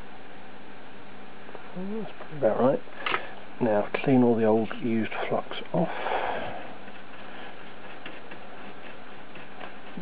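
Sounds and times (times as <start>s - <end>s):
steady background hiss: 0.0s - 10.0s
cloth rubbing circuit board: 6.6s - 10.0s.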